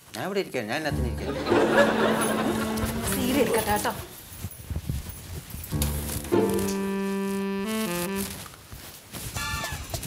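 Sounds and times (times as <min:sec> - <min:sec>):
background music with sustained notes: 0:00.9 - 0:04.1, 0:05.7 - 0:08.3
bare feet stepping on floor: 0:05.7 - 0:08.4.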